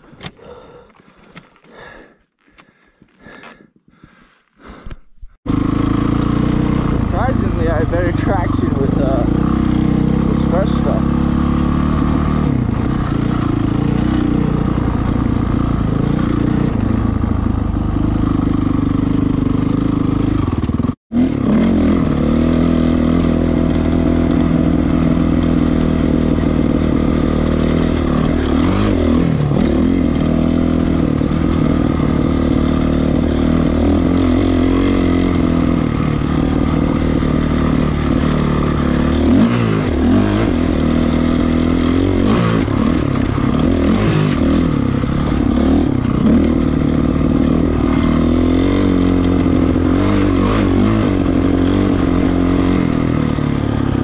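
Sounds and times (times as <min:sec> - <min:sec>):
dirt bike engine revving: 0:05.5 - 0:54.0.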